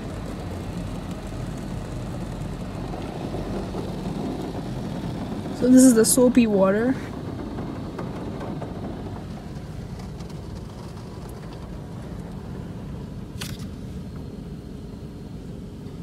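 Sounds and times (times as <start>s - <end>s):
car wash low rumble: 0.0s - 16.0s.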